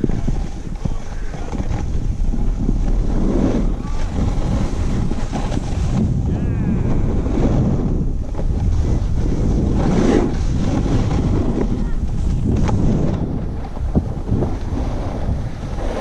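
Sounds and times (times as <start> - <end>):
skis hissing over packed snow: 0.0 - 6.3, 7.0 - 13.1
wind buffeting microphone: 0.0 - 16.0.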